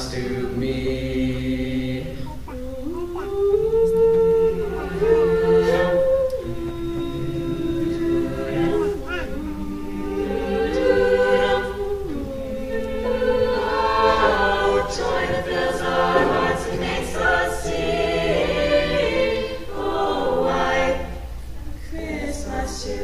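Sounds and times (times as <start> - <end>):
vocal ensemble singing a cappella: 0.0 - 23.0.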